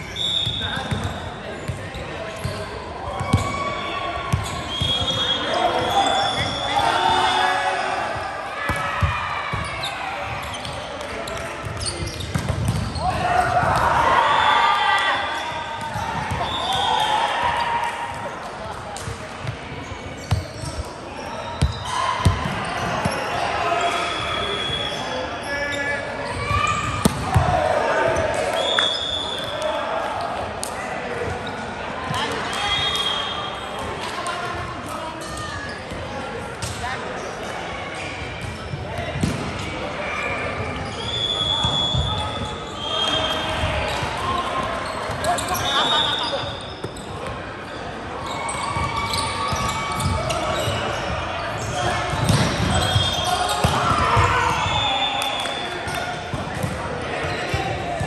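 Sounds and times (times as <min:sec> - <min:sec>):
players calling and talking: 0:00.0 - 0:58.0.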